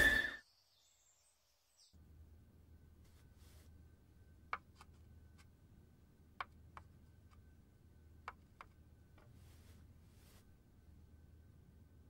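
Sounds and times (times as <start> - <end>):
faint high bird chirps: 0.0 - 2.0.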